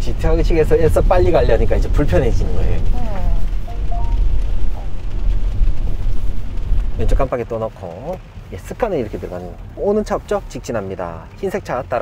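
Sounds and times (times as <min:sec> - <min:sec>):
car driving on wet road: 0:00.0 - 0:12.0
rain: 0:00.0 - 0:12.0.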